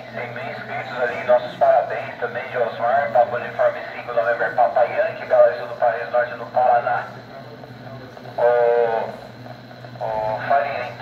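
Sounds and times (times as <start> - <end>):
man talking over radio speaker: 0.0 - 9.2, 9.9 - 11.0.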